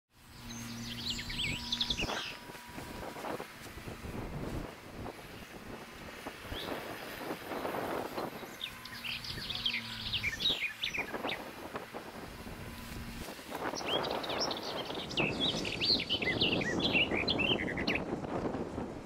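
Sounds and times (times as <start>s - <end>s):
birds chirping: 0.2s - 18.2s
wind buffeting microphone: 0.4s - 19.0s.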